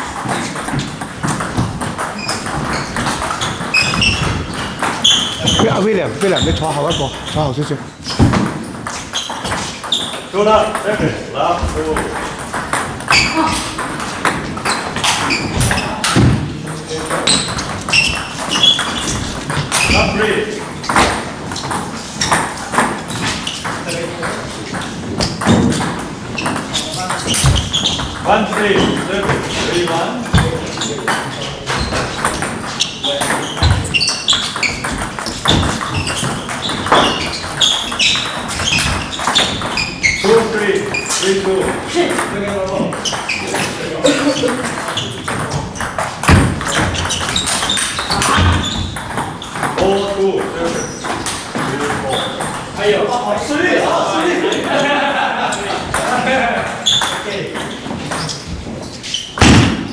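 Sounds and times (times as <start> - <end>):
voices in a hall: 2.0 - 59.9
voices talking: 5.0 - 7.9, 39.4 - 45.8, 49.7 - 58.3.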